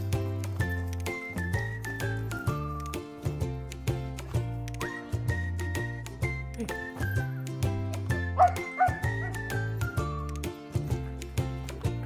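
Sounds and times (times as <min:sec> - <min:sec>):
background music with steady beat: 0:00.0 - 0:12.0
dog yipping: 0:08.4 - 0:09.5.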